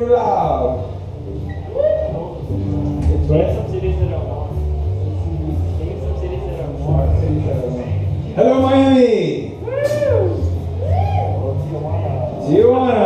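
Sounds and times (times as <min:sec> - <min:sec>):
electric bass notes: 0:00.0 - 0:13.0.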